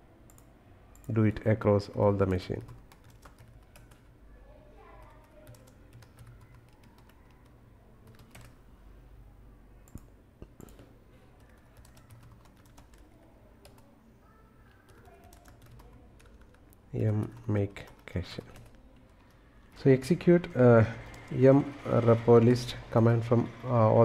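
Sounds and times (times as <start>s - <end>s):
keyboard keystrokes: 8.1s - 8.6s, 11.5s - 13.0s.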